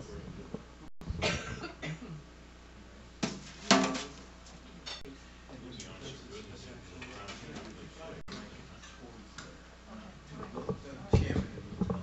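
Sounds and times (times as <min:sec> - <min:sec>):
person coughing: 0:01.2 - 0:02.2.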